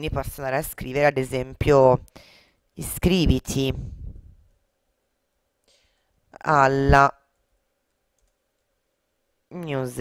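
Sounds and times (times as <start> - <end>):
woman speaking: 0.0 - 2.1, 2.8 - 4.0, 6.4 - 7.3, 9.5 - 10.0.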